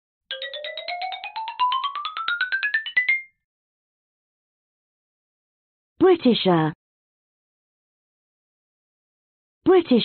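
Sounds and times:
electronic jingle with climbing notes: 0.3s - 3.4s.

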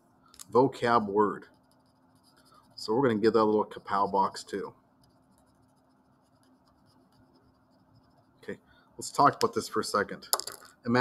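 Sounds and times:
low steady hum: 0.0s - 11.0s
pencil scratching on paper: 0.9s - 8.4s.

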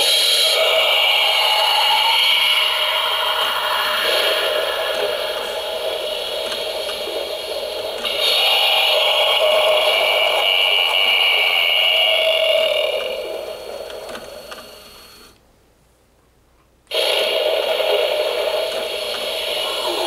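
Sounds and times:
spooky sounds from tinny speaker: 0.0s - 15.1s, 16.9s - 20.0s.

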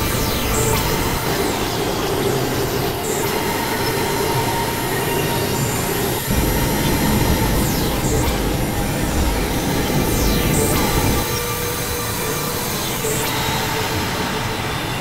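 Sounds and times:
heavy low rumble: 6.3s - 11.2s.

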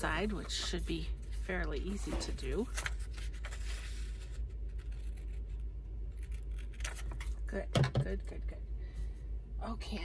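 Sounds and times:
paper rustling: 0.0s - 5.6s
scissors snipping paper: 6.2s - 7.3s.

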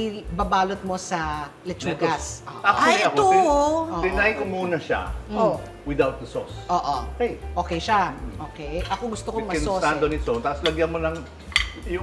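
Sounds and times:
cutlery clinking on plates: 8.8s - 9.5s, 10.1s - 12.0s.

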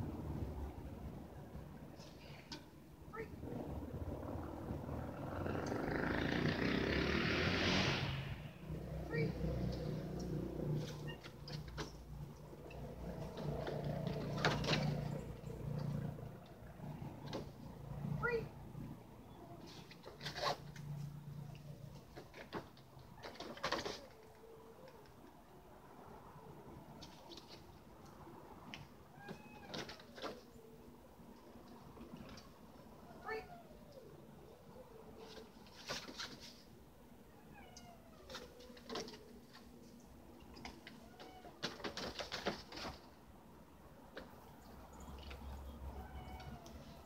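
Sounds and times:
meow-like animal call: 29.1s - 30.0s, 37.3s - 38.5s, 41.0s - 41.6s, 45.9s - 47.0s.

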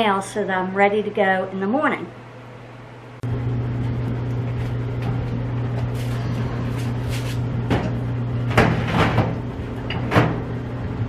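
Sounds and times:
clothes dryer humming: 0.0s - 11.0s.

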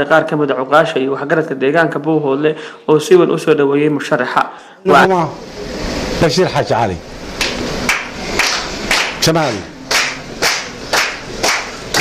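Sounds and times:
hand clapping: 7.4s - 12.0s.

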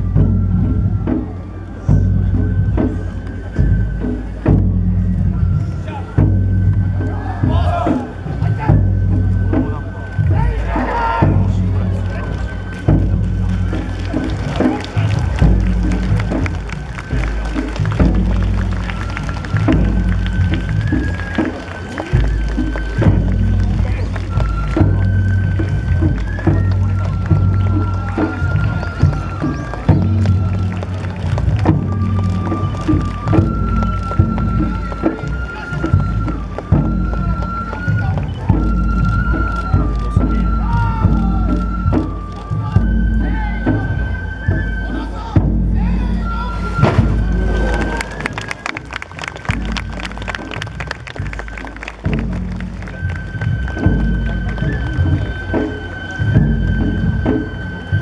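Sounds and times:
bamboo flute melody: 0.0s - 58.0s
drum beats: 0.0s - 58.0s.

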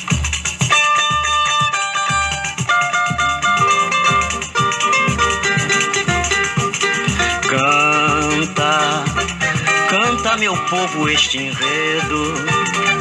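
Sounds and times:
low drum beat: 0.0s - 13.0s
plucked string melody: 0.0s - 13.0s
shaker: 0.0s - 13.0s.

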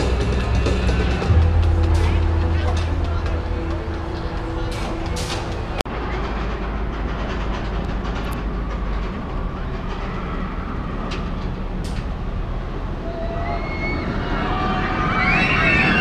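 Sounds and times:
roller coaster rumbling on track: 0.0s - 16.0s.

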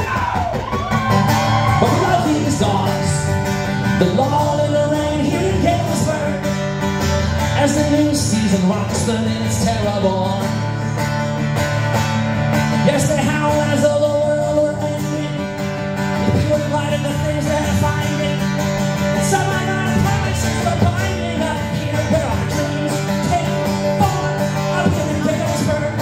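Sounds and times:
guitar strummed through pa: 0.0s - 26.0s.

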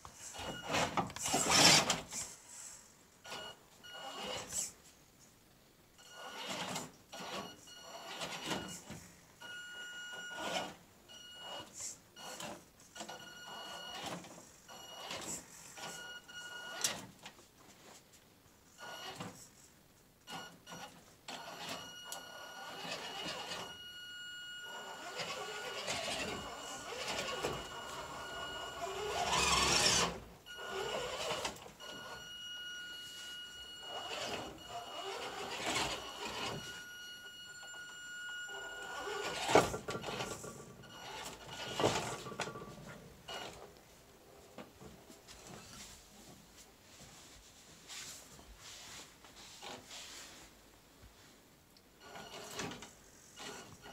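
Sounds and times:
rc car electric motor whining: 0.7s - 2.0s, 24.6s - 31.6s, 33.9s - 36.8s.

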